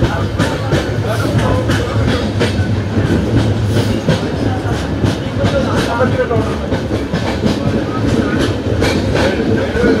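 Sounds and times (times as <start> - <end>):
train wheels rumbling on track: 0.0 - 10.0.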